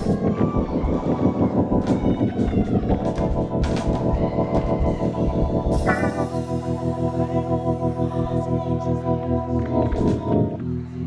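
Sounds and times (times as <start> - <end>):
drum kit beat: 0.0 - 7.3
church band playing: 0.0 - 10.8.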